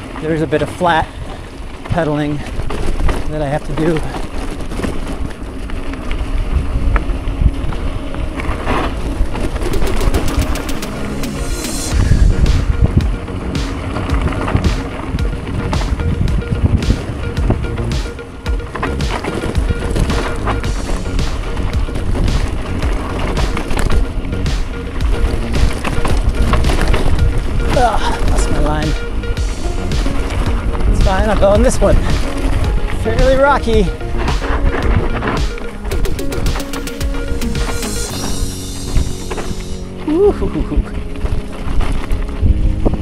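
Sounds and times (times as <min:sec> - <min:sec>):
heavy rumble over rough ground: 0:00.0 - 0:43.0
tyres crunching over stones: 0:00.0 - 0:43.0
quick even ticks: 0:09.6 - 0:20.4
wind on microphone: 0:11.7 - 0:18.0, 0:18.8 - 0:35.6, 0:38.1 - 0:43.0.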